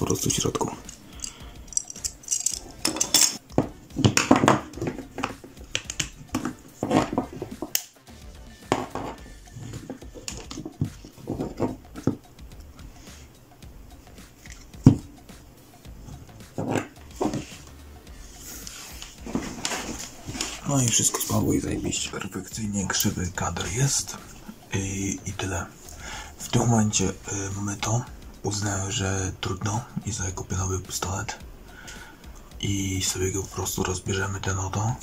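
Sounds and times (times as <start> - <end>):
plastic parts clicking and rattling: 0.2 - 7.9, 9.7 - 12.2.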